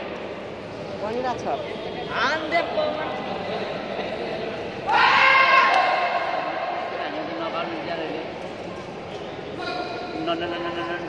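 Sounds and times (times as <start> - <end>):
loud high-pitched yell: 4.9 - 6.4.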